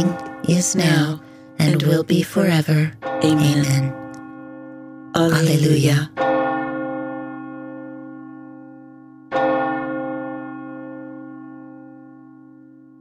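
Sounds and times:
bell ringing: 0.0s - 9.9s.

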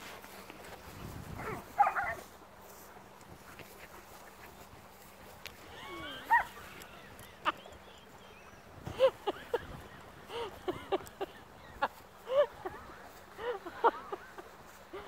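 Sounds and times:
dog barking and yelping: 1.4s - 2.2s, 6.1s - 6.6s.

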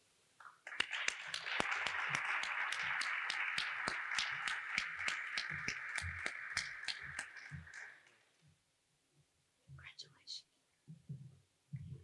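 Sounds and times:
audience applauding: 0.4s - 8.2s.

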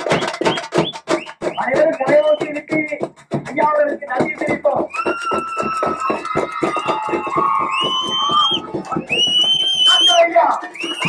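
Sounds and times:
high whistling tone: 0.0s - 2.6s, 4.9s - 11.0s
fast even drumming: 0.0s - 11.0s.

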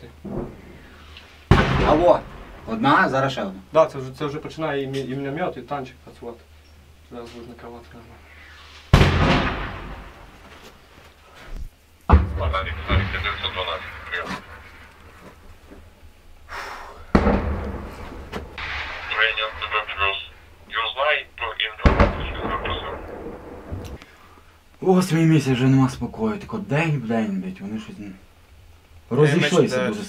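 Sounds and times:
explosions booming: 0.2s - 3.5s, 8.5s - 10.6s, 12.1s - 15.4s, 17.1s - 24.0s
muffled voices: 12.4s - 15.4s, 18.6s - 23.3s.

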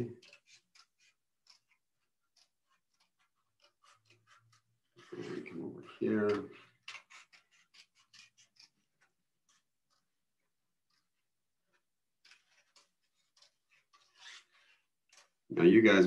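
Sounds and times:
scissors snipping paper: 0.2s - 15.4s.

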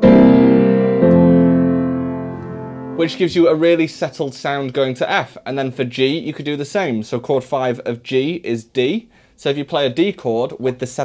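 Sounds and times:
piano chord ringing: 0.0s - 4.0s.

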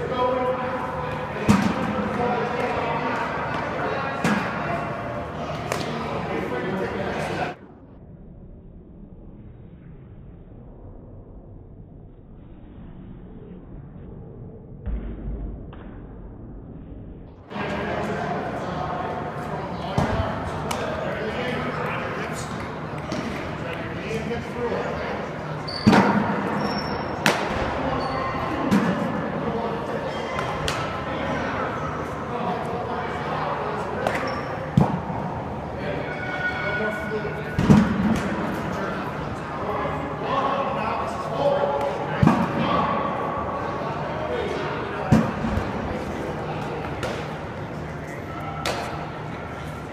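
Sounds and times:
murmur of background voices: 0.0s - 7.6s, 17.4s - 49.9s.

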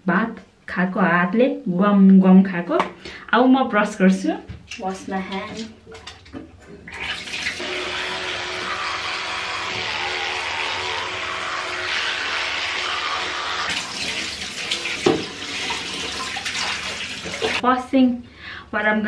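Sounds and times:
tap running into sink: 13.7s - 17.6s.

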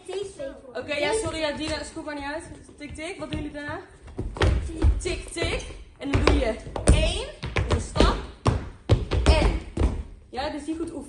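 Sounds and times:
voices: 0.0s - 4.0s
feet stamping on floor: 1.2s - 10.2s.

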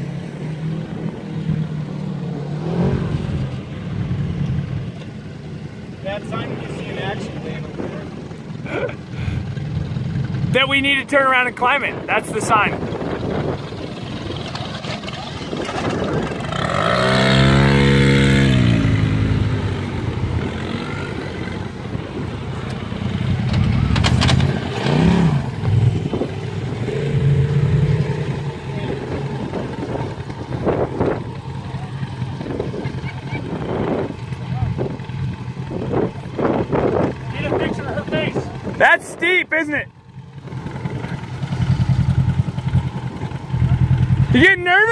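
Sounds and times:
vehicle engine revving: 0.0s - 4.9s, 12.0s - 39.3s, 40.0s - 44.9s.

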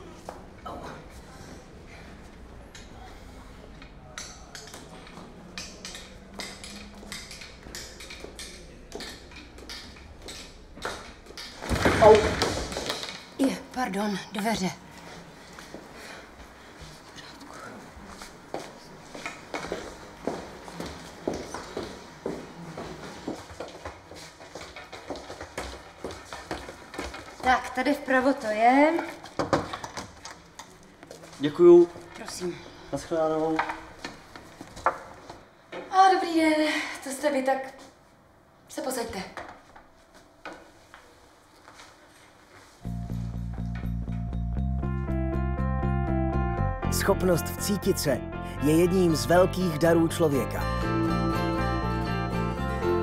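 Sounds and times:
footsteps on stone stairs: 18.5s - 27.8s.

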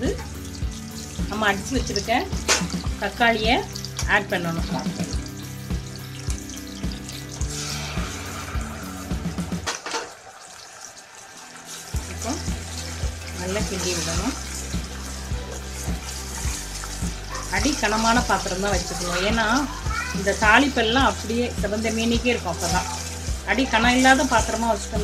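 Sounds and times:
background music with steady beat: 0.0s - 9.9s, 11.3s - 25.0s
tomato puree pouring: 0.0s - 21.4s
onions sizzling in hot oil: 0.0s - 25.0s.

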